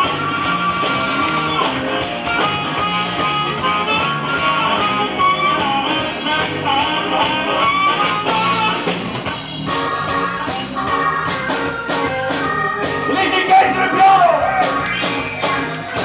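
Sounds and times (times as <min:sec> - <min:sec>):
blues band playing: 0:00.0 - 0:16.0
electric guitar bending notes: 0:00.0 - 0:16.0.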